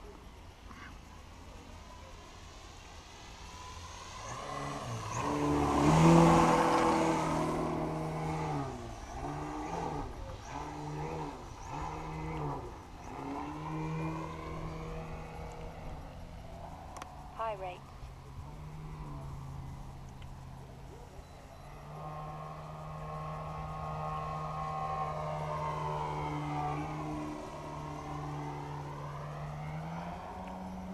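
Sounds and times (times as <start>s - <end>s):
model plane engine: 0.0s - 30.9s
engine throttle bursts: 0.7s - 30.9s.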